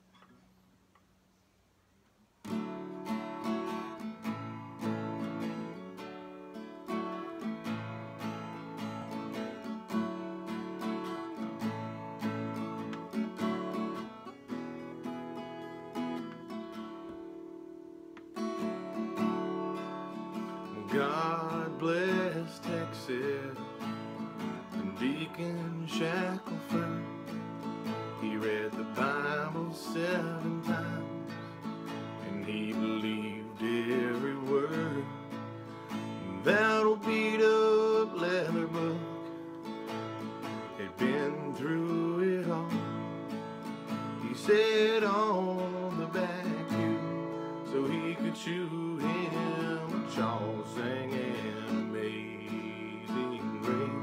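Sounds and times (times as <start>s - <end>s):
acoustic guitar playing: 2.3s - 54.0s
man singing: 20.3s - 39.4s, 40.5s - 54.0s.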